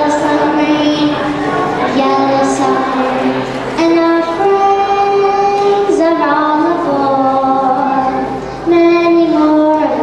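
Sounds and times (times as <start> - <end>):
girl singing into a microphone: 0.0 - 10.0.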